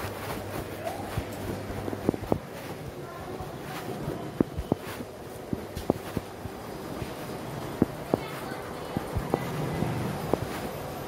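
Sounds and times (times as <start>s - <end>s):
dull footstep thumps: 0.0s - 2.9s, 3.6s - 9.6s.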